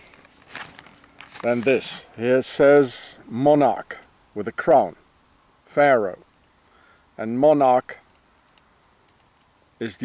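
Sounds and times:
man's voice: 0:01.4 - 0:05.0
faint clicks: 0:08.1 - 0:09.6.

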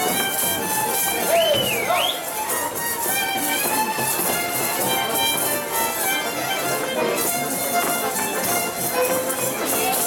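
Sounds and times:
folk dance music with violins: 0:00.0 - 0:10.0.

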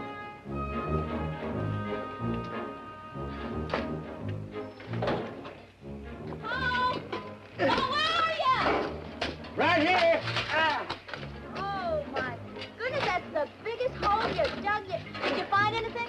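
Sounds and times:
film score music: 0:00.0 - 0:16.0
excited high-pitched shouts: 0:07.6 - 0:08.7.

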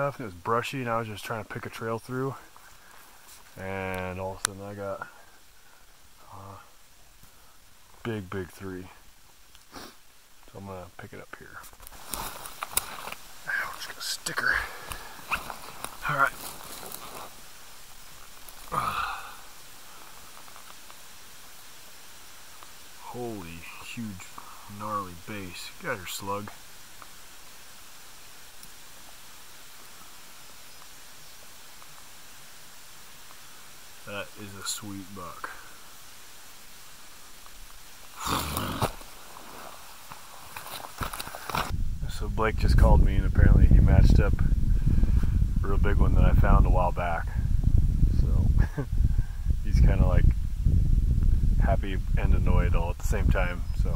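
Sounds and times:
faint steady hiss: 0:00.0 - 0:53.9
handling and rustling noise: 0:11.6 - 0:18.8, 0:37.4 - 0:41.8
footsteps through dry brush: 0:11.7 - 0:21.2, 0:37.4 - 0:41.8.

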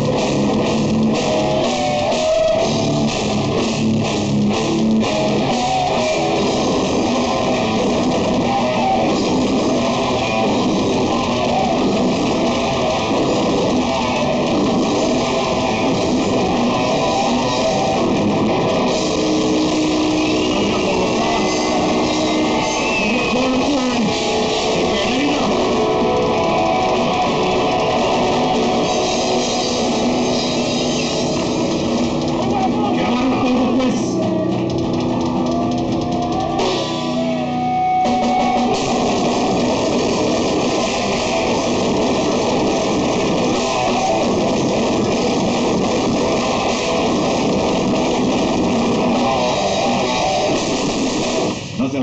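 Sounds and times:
dense drumming: 0:00.0 - 0:37.4, 0:38.0 - 0:52.0
distorted electric guitars: 0:00.0 - 0:52.0
metal band playing live: 0:00.0 - 0:52.0.

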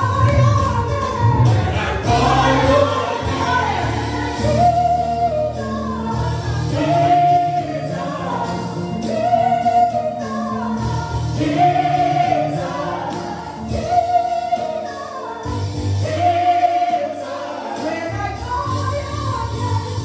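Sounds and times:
woman singing into a microphone: 0:00.0 - 0:17.2, 0:17.8 - 0:20.0
backing singers: 0:00.0 - 0:20.0
gospel backing track: 0:00.0 - 0:20.0.

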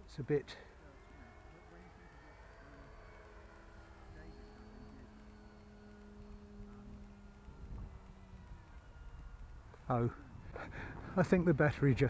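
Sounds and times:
electric motor and propeller hum: 0:00.0 - 0:12.0.

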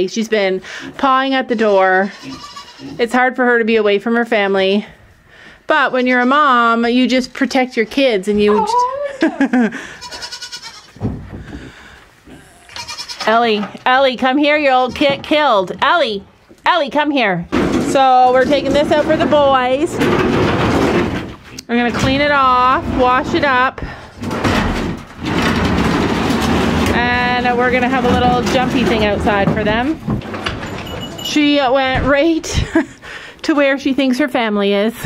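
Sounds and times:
goat bleating: 0:01.5 - 0:03.0, 0:09.8 - 0:11.0, 0:12.4 - 0:13.4
board scraping on concrete floor: 0:17.6 - 0:21.4, 0:24.2 - 0:30.9.

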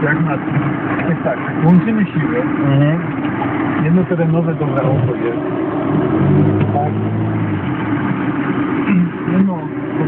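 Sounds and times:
people talking: 0:00.0 - 0:03.2, 0:03.8 - 0:05.4, 0:06.5 - 0:07.4, 0:08.9 - 0:10.0
engine running low hum: 0:00.0 - 0:10.0.

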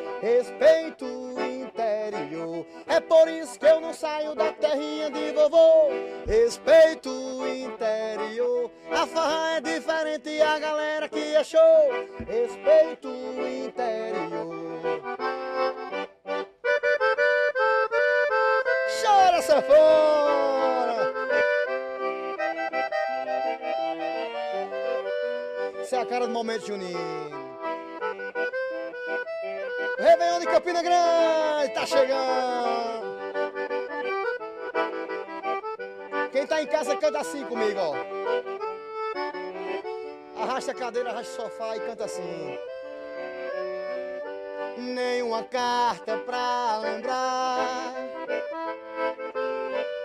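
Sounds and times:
piano accordion playing: 0:00.0 - 0:50.0.

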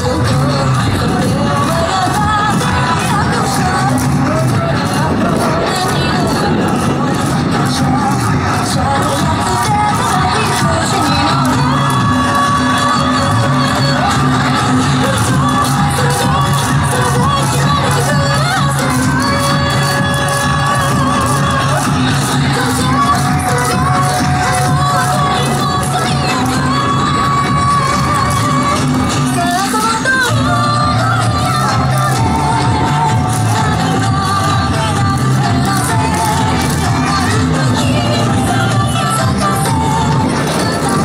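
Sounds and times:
dance music over loudspeakers: 0:00.0 - 0:41.0
people shouting and cheering: 0:00.0 - 0:41.0.

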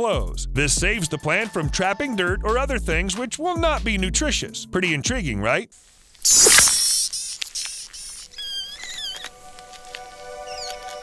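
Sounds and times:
fly buzzing: 0:06.0 - 0:09.7
short high squeaks: 0:06.2 - 0:09.3.

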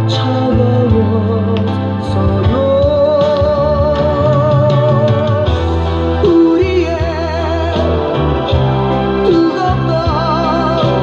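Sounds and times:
pop song from vinyl record: 0:00.0 - 0:11.0.

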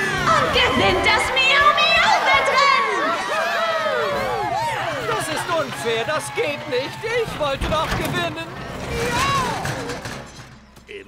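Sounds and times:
cartoon cats cheering: 0:00.0 - 0:07.3.

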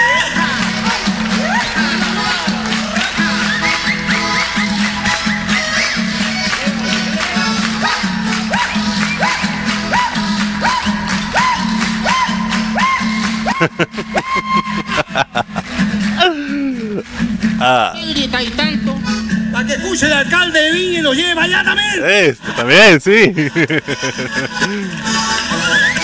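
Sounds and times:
pulsing bass: 0:00.0 - 0:22.6
accordion figure: 0:00.0 - 0:26.0
guitar: 0:00.0 - 0:26.0.

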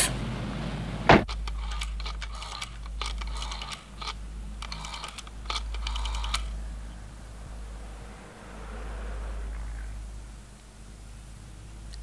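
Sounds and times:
rotary telephone dial clicking: 0:01.3 - 0:06.5.

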